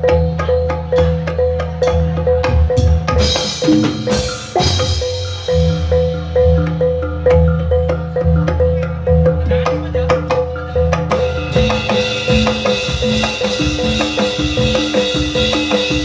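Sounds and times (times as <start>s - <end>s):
metal-keyed percussion repeating: 0.0s - 16.0s
low drum beats: 8.2s - 16.0s.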